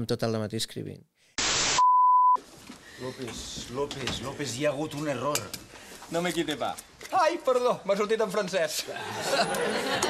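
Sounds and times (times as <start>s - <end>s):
static hiss: 1.4s - 1.9s
high-pitched beep: 1.8s - 2.4s.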